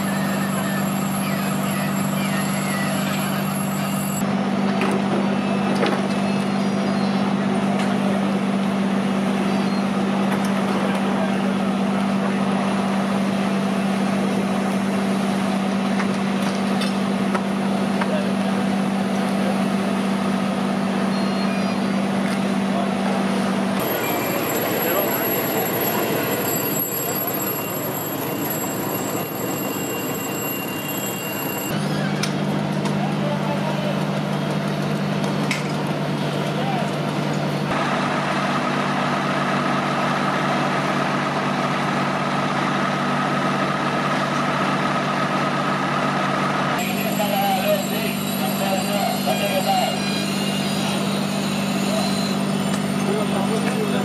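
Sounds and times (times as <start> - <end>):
voices: 0.0 - 4.2, 20.8 - 30.4, 31.0 - 34.9, 46.8 - 50.2, 51.7 - 54.0
engines humming: 0.0 - 54.0.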